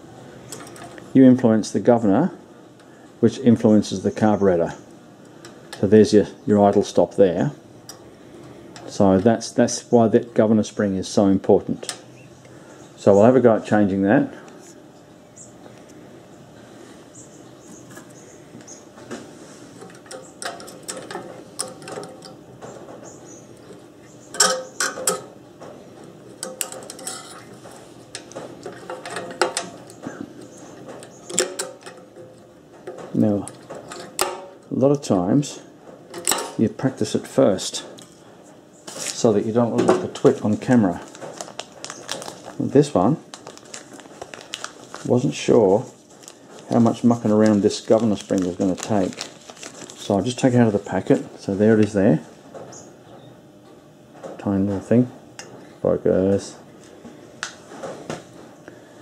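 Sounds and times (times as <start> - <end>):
plastic packet crinkling: 40.1 - 51.3.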